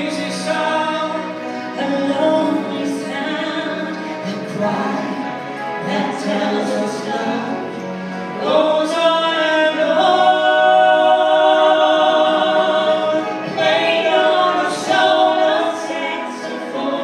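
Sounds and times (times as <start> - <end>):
man and woman singing duet: 0.0 - 17.0.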